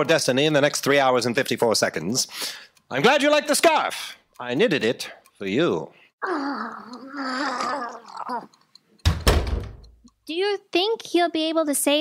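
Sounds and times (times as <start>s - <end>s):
heavy thunk: 9.0s - 9.8s.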